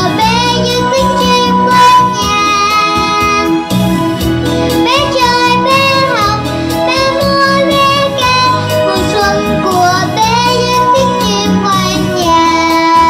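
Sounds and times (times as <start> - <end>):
girl singing into microphone: 0.0 - 3.6, 4.8 - 13.0
instrumental accompaniment with beat: 0.0 - 13.0.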